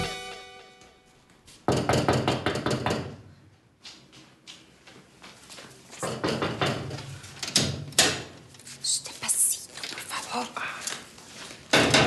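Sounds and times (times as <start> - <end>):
salsa music: 0.0 - 0.8
loud knocks on a door: 1.7 - 3.2, 6.0 - 6.9.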